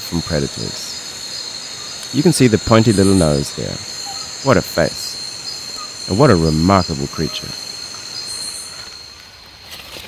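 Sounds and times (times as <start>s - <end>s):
crickets singing: 0.0s - 10.0s
faint hiss: 0.0s - 10.0s.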